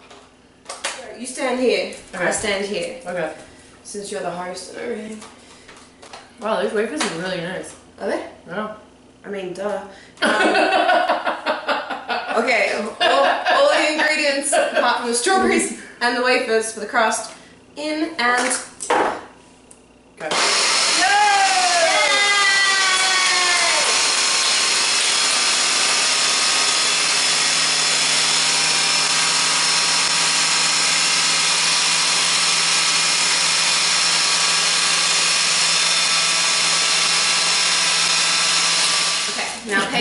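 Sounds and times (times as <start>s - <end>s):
blender running: 20.2s - 40.0s
person whooping: 21.0s - 24.0s.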